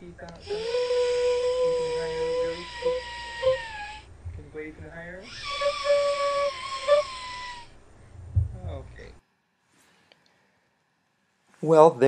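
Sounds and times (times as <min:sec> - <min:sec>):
woman singing hoarse high note: 0:00.0 - 0:07.3.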